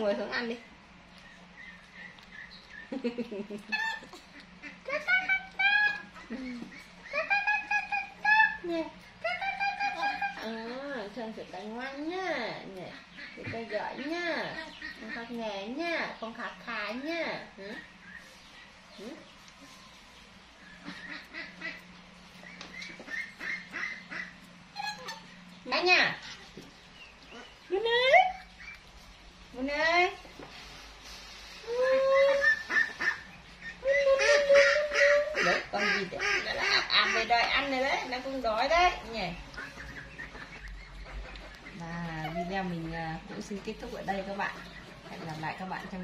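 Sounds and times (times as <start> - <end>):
monkey high-pitched coo: 3.7 - 10.5, 24.8 - 25.3, 31.6 - 32.9, 33.7 - 35.6.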